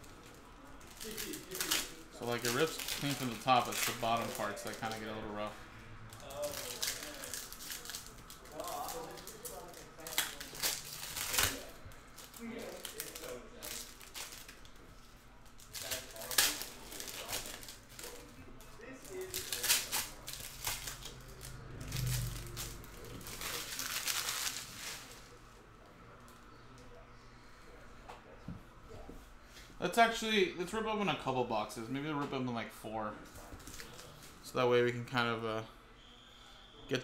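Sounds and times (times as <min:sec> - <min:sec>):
card pack wrappers tearing and crinkling: 0:00.0 - 0:05.5, 0:06.1 - 0:25.4.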